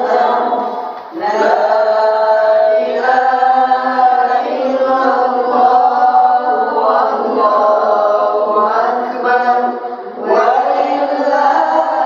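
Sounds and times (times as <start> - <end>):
person chanting verses: 0.0 - 12.0.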